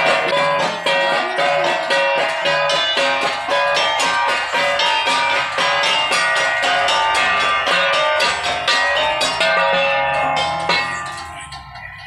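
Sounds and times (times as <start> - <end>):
struck notes ringing: 0.0 - 12.0.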